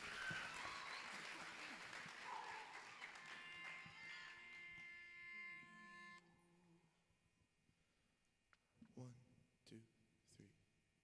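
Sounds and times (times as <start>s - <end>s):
faint crowd applause: 0.0s - 5.1s.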